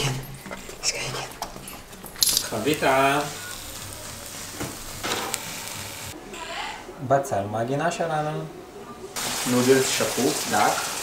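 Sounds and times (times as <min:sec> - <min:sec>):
omelette sizzling in frying pan: 0:01.9 - 0:06.2, 0:09.2 - 0:11.0.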